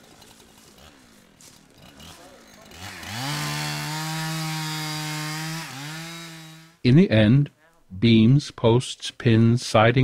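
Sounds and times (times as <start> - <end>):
chainsaw revving: 0.0 - 6.8.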